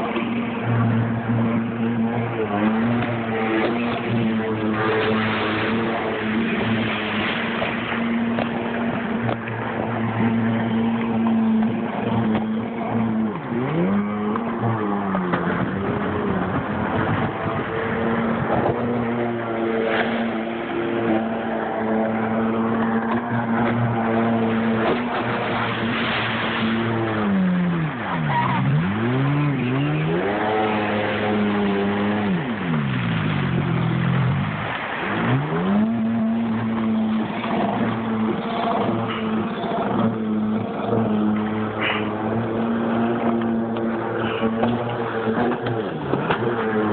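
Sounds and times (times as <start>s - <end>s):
personal watercraft engine revving: 0.0s - 46.9s
water rushing: 0.0s - 46.9s
wind: 0.0s - 46.9s.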